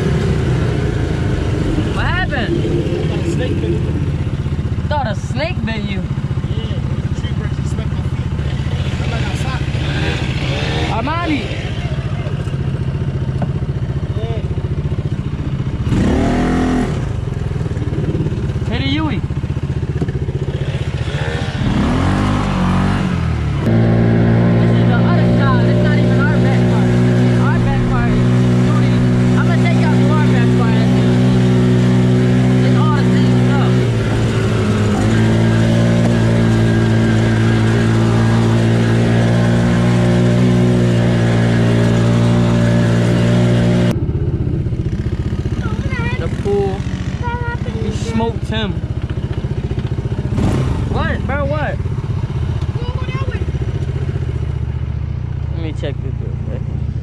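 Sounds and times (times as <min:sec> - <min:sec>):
voices: 0:00.0 - 0:15.1, 0:23.7 - 0:44.0, 0:45.4 - 0:50.1, 0:50.8 - 0:51.9, 0:52.5 - 0:54.6, 0:55.4 - 0:56.6
small engine running: 0:00.0 - 0:54.6.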